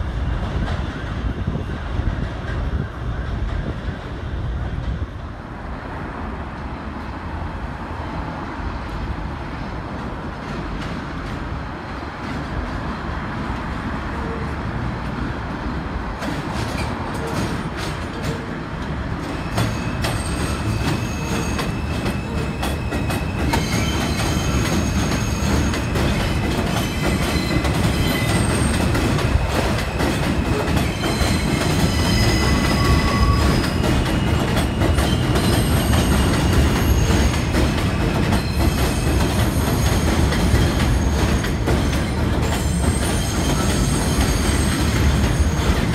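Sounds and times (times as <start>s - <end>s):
train wheels rumbling on rail: 0.0s - 45.9s
high-pitched wheel squeals: 19.3s - 45.9s.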